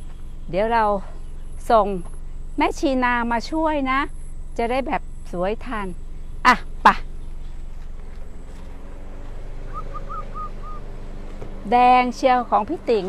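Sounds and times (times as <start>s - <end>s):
outdoor background noise: 0.0s - 13.0s
bird calling short notes: 9.6s - 10.9s.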